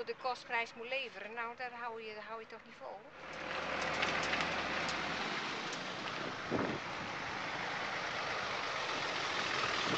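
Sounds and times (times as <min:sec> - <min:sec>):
tractor engine: 0:03.1 - 0:09.9
trailers rolling: 0:03.2 - 0:09.9.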